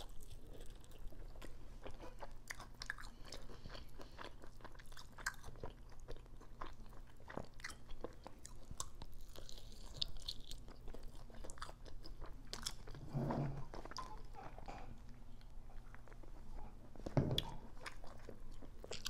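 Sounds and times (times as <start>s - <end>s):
chewing and biting chicken wings: 0.0s - 13.0s, 17.4s - 19.0s.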